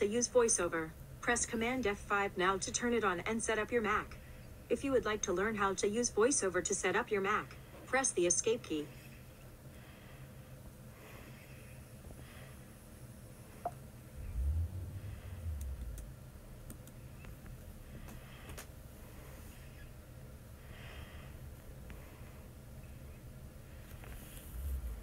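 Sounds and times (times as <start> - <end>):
faint steady low hum: 0.0 - 25.0.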